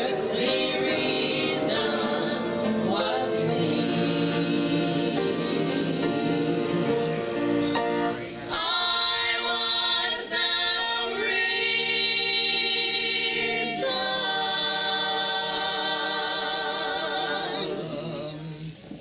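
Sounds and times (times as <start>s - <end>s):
choir singing in harmony: 0.0s - 18.6s.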